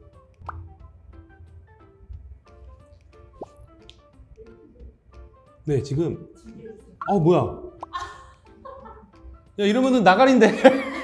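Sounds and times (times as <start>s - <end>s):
playful plinking background music: 0.0s - 1.8s, 2.5s - 11.0s.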